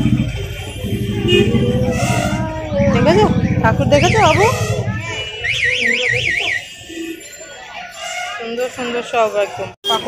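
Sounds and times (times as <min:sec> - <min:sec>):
electronic warbling alarm: 0:00.0 - 0:08.0
market voices: 0:00.0 - 0:10.0.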